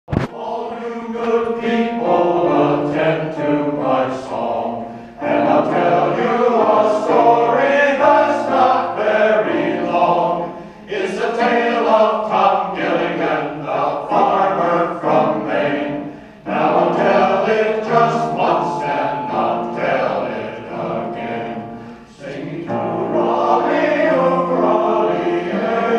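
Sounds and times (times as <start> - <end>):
mixed choir singing: 0.1 - 25.9.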